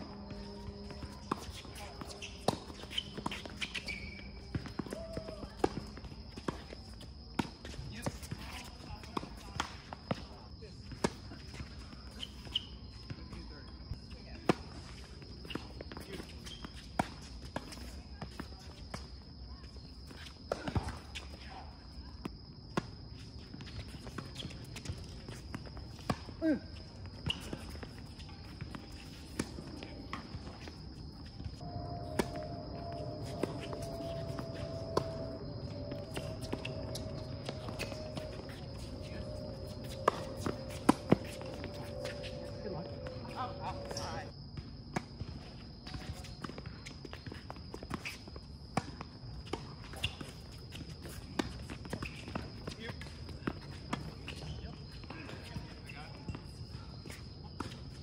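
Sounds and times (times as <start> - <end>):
sneakers scuffing on court: 0.0 - 10.3, 23.2 - 58.0
tennis ball bouncing: 27.4 - 44.1
steady high-pitched tone: 31.6 - 44.3.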